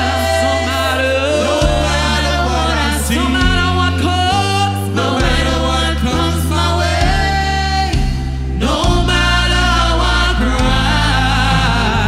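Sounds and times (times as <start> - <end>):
singers in harmony: 0.0 - 12.0.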